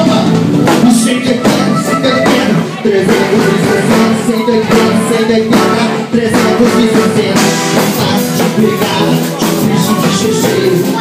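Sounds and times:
drum beat: 0:00.0 - 0:11.0
live band music: 0:00.0 - 0:11.0.

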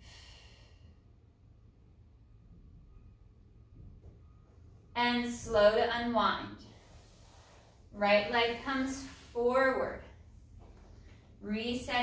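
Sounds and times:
faint low room rumble: 0:00.0 - 0:12.0.

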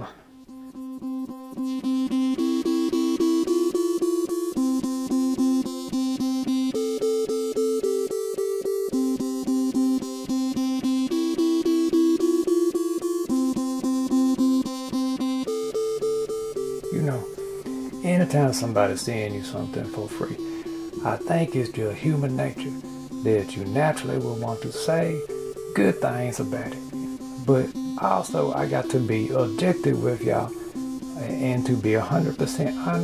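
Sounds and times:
plucked guitar notes: 0:16.8 - 0:33.0.

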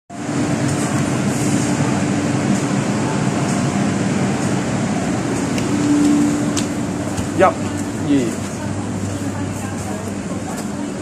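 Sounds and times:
electric train humming at platform: 0:00.1 - 0:11.0.

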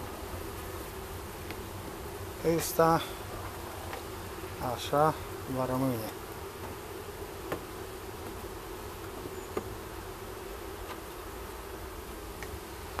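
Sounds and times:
bees buzzing: 0:00.0 - 0:13.0.

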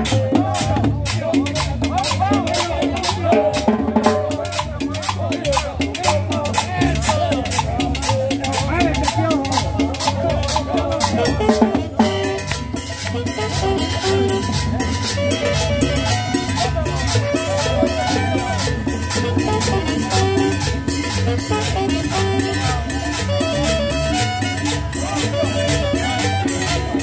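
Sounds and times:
conga and drum kit: 0:00.0 - 0:27.0
latin dance music band: 0:00.0 - 0:27.0
voices: 0:00.0 - 0:27.0.

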